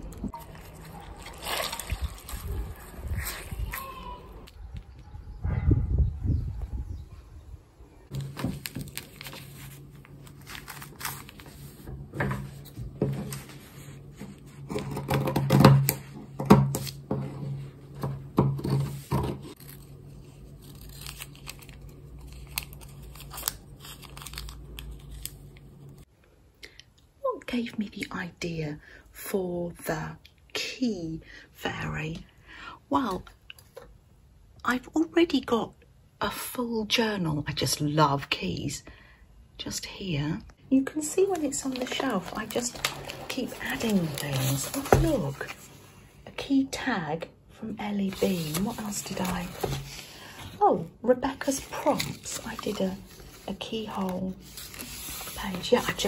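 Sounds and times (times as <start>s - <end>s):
wet fabric sloshing in liquid: 0.4s - 3.5s.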